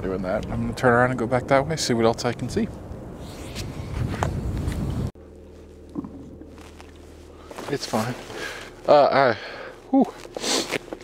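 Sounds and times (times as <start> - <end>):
wind rumbling on microphone: 0.4 - 5.2
car cabin hum: 3.8 - 11.0
footsteps on snow: 6.5 - 8.8.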